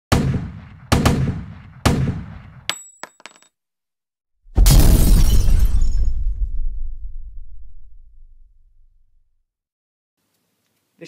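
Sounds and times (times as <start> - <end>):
explosion with rumbling tail: 4.5 - 8.6.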